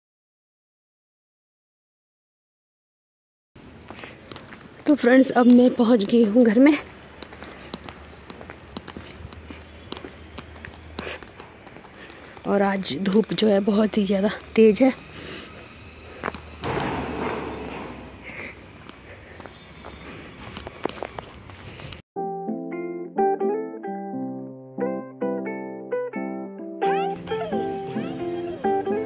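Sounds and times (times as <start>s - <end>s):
outdoor ambience: 3.6s - 22.0s, 27.2s - 29.0s
handling clicks and knocks: 4.2s - 13.5s, 16.2s - 19.5s
plucked note music: 22.2s - 29.0s.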